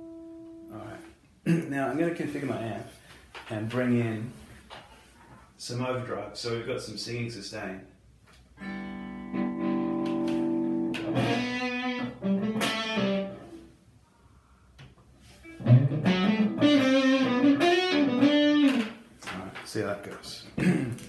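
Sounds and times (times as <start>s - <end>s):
overdriven electric guitar: 8.6s - 13.7s, 15.4s - 19.0s.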